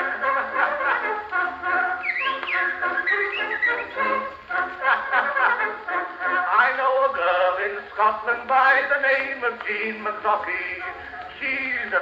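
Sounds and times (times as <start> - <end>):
sliding high notes: 0.0 - 6.4
phonograph playing band music: 0.0 - 12.0.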